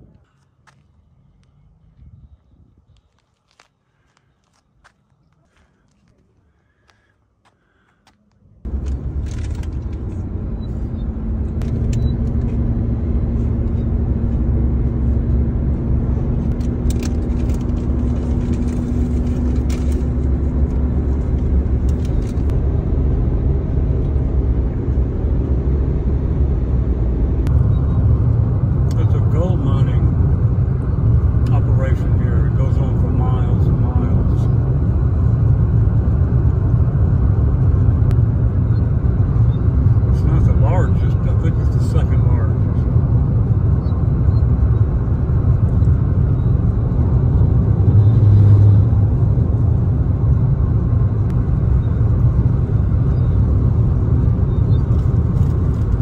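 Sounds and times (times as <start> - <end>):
car road and engine rumble: 0.0 - 56.0.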